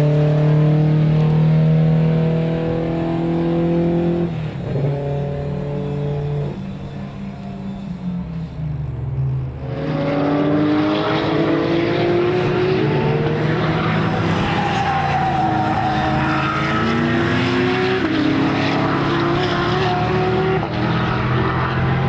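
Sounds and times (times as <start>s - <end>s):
race car engine accelerating: 0.0s - 22.0s.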